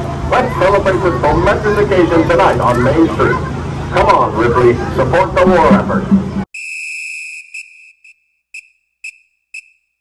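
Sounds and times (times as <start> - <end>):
short high whistle blasts: 6.6 - 9.8.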